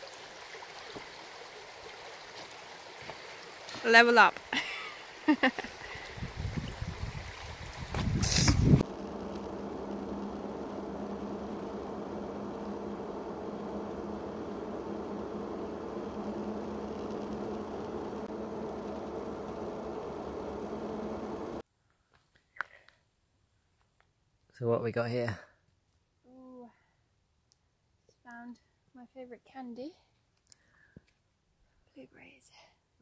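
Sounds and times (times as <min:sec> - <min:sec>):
car engine and road noise: 0:08.0 - 0:21.6
low steady hum: 0:08.0 - 0:21.6
loud rush of noise: 0:08.1 - 0:21.6.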